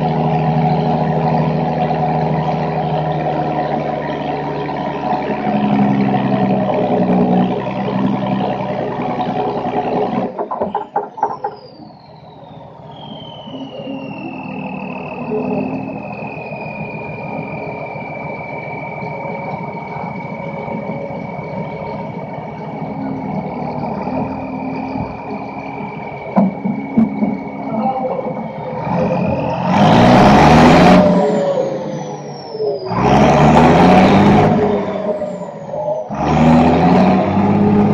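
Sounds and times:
diesel tractor engine revving: 0:00.0 - 0:37.9
engine whine: 0:00.0 - 0:37.9
falling turbo whistle: 0:11.5 - 0:36.1.

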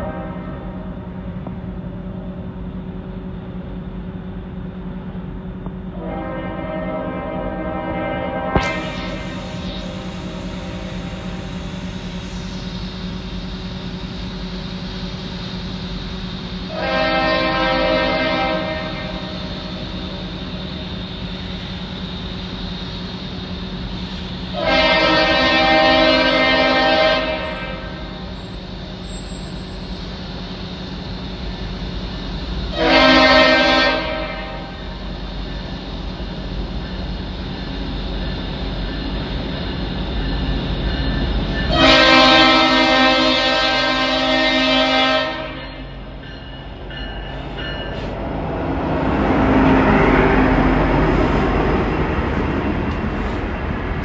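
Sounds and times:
locomotive horn blasts: 0:00.0 - 0:00.8, 0:05.9 - 0:10.4, 0:16.7 - 0:19.4, 0:24.5 - 0:28.3, 0:32.7 - 0:34.9, 0:41.7 - 0:46.0
diesel locomotive rumble: 0:00.0 - 0:54.0.

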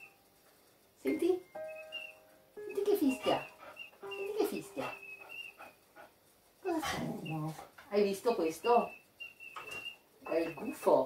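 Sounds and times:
woman speaking: 0:01.0 - 0:01.5, 0:02.7 - 0:03.6, 0:04.2 - 0:05.0, 0:06.6 - 0:09.0, 0:10.2 - 0:11.0
dog whimpering: 0:01.7 - 0:05.8, 0:06.6 - 0:07.7.

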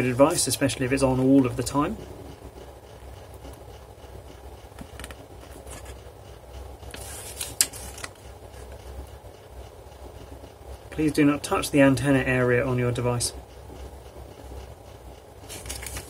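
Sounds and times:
low steady hum: 0:00.0 - 0:16.0
faint paper ticks: 0:02.9 - 0:09.5, 0:13.0 - 0:16.0
paper pages rustling: 0:07.0 - 0:08.2, 0:15.5 - 0:16.0.

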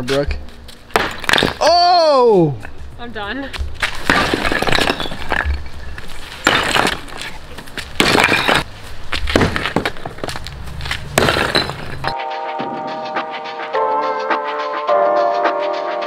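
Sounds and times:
sledgehammer smashing concrete blocks: 0:00.9 - 0:01.8, 0:03.8 - 0:05.7, 0:06.4 - 0:08.7, 0:09.3 - 0:10.3, 0:11.2 - 0:12.1
broken block clattering down: 0:11.2 - 0:12.2
music: 0:12.1 - 0:16.0.

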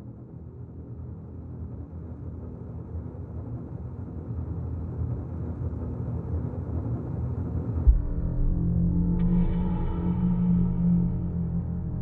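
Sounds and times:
low rumbling drone: 0:07.9 - 0:12.0.

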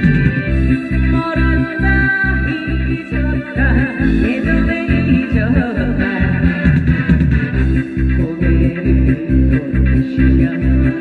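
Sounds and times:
amplified backing track with bass beat: 0:00.0 - 0:11.0
woman singing with vibrato: 0:00.7 - 0:06.6.

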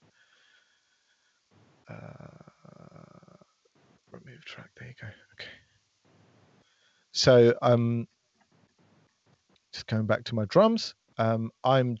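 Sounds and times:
man's creaky hesitation sound: 0:01.6 - 0:05.1.

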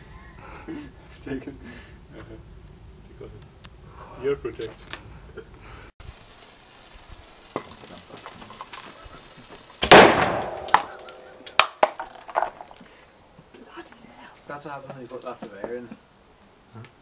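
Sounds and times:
plastic bottle bursting with a bang: 0:09.8 - 0:12.6.

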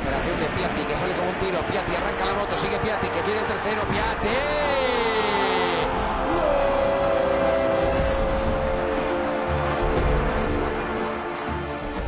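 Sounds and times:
background music: 0:00.0 - 0:12.0
stadium crowd noise: 0:00.0 - 0:12.0
commentator long held shout: 0:03.8 - 0:09.1.

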